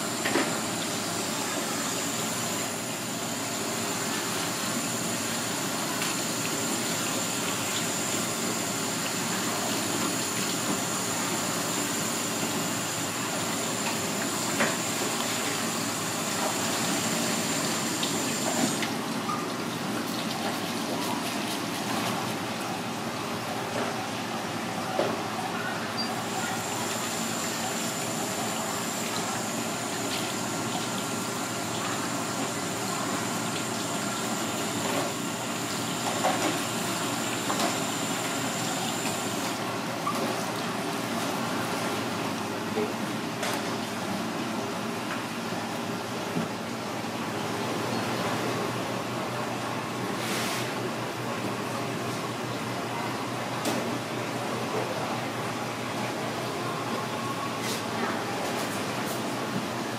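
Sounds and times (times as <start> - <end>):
water running from a hose: 0.0 - 22.5, 26.2 - 39.6.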